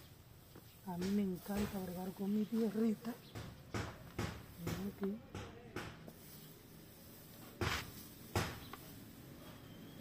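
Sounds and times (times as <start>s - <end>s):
hands rustling dry potting mix: 0.0s - 10.0s.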